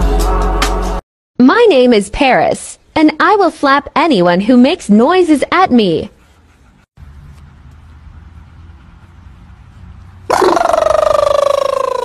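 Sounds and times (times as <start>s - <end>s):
husky howling: 10.3s - 12.0s.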